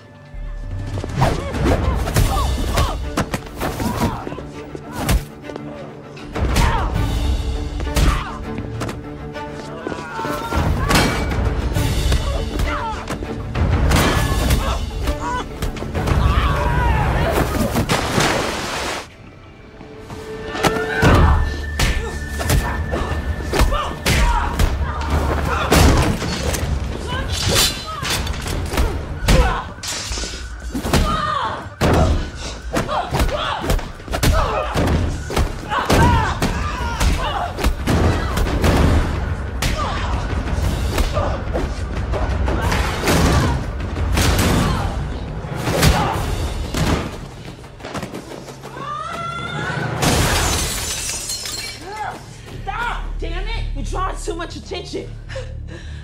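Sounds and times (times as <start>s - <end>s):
glass shattering: 50.0s - 51.9s.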